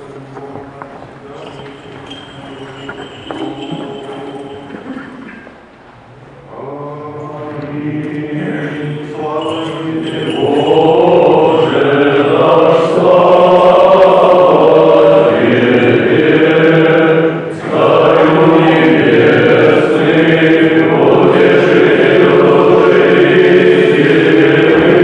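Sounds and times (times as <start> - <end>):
voices chanting: 0.0 - 5.1, 6.4 - 25.0.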